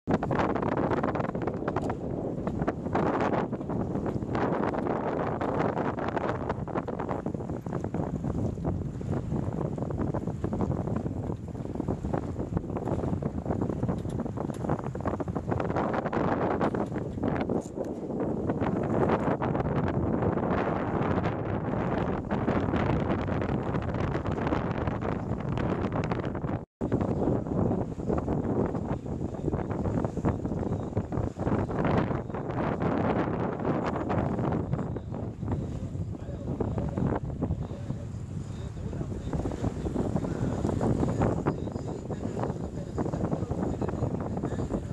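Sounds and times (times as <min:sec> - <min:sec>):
wind buffeting microphone: 0:00.1 - 0:44.9.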